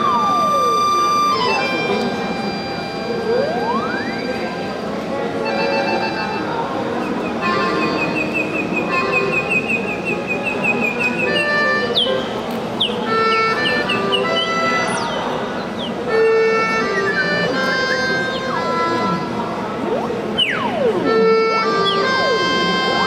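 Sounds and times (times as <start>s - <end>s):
experimental electronic music: 16.6s - 23.0s.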